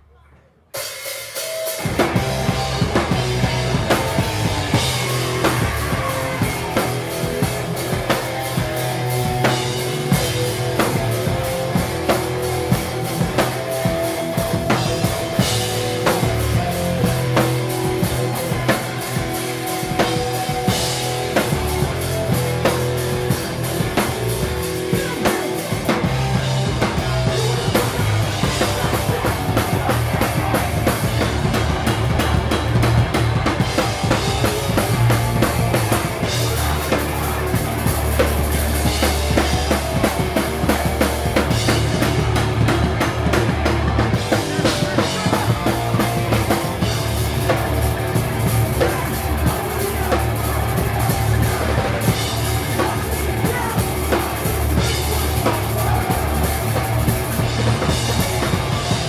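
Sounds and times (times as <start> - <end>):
loud busy drum kit: 0.6 - 59.0
distorted electric guitars: 0.8 - 59.0
bass guitar: 1.8 - 59.0.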